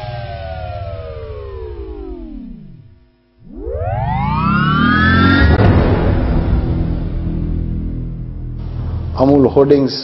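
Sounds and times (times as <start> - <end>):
synthesized rising whoosh: 0.0 - 8.9
low rumble: 0.8 - 9.2.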